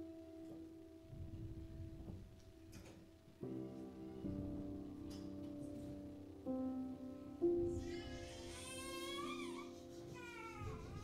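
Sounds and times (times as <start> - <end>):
piano sustained chords: 0.0 - 11.0.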